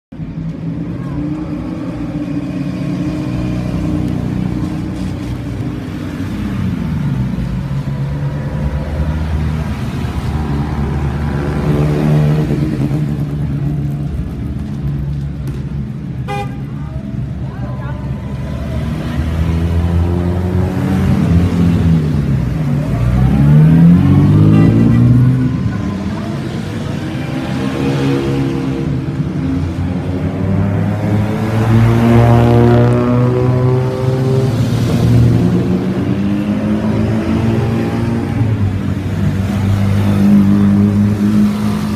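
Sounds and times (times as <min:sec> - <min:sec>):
sports car engines revving: 0:00.2 - 0:41.9.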